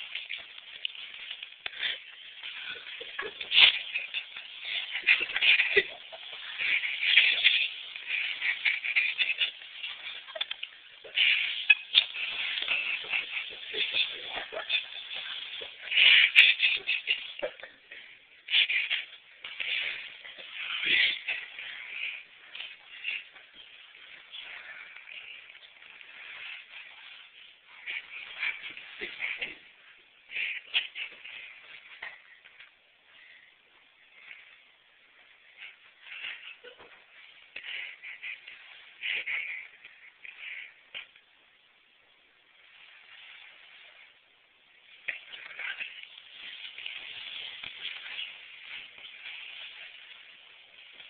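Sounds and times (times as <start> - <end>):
fabric rustling: 0.0 - 51.0.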